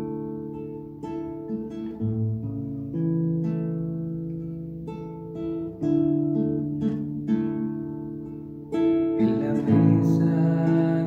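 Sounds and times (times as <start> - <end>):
fingerstyle classical guitar: 0.0 - 11.0.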